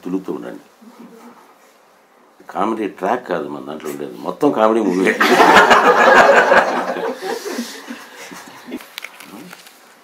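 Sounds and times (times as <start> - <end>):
group laughing: 5.0 - 8.8.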